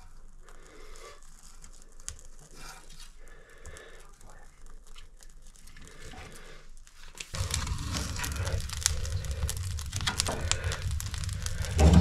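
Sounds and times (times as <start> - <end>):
wood fire crackling and popping: 0.0 - 12.0
logs pushed into firebox: 7.3 - 12.0
low rumble: 7.4 - 12.0.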